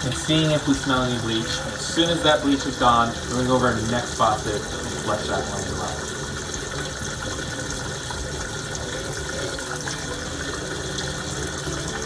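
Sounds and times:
faucet running into sink: 0:00.0 - 0:12.0.

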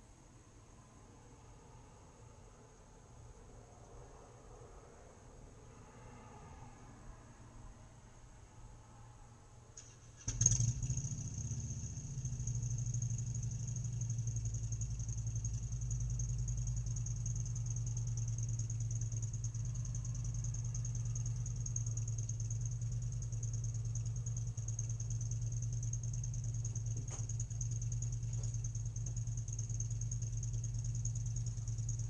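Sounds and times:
motorcycle engine starting and idling: 0:09.8 - 0:32.0.

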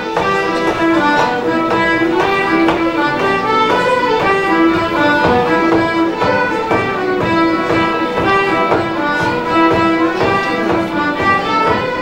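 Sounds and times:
folk ensemble with fiddles and whistles: 0:00.0 - 0:12.0.

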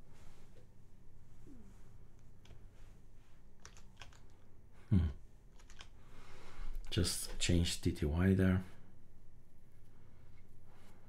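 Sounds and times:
keyboard keys clicking: 0:03.6 - 0:04.3, 0:05.6 - 0:05.9.

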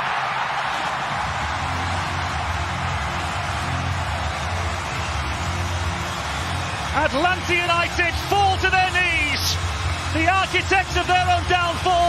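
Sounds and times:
stadium crowd cheering: 0:00.0 - 0:12.0
low steady music: 0:01.0 - 0:12.0.

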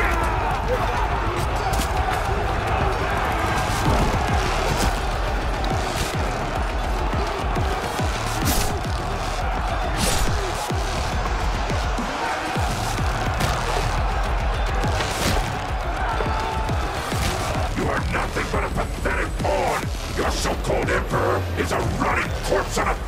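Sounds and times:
dense battle noise: 0:00.0 - 0:23.0.

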